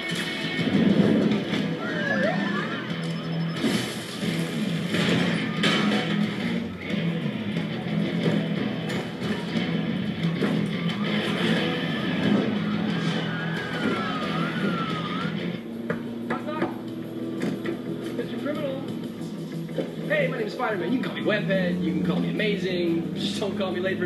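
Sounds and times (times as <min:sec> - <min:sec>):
action film score: 0:00.0 - 0:24.0.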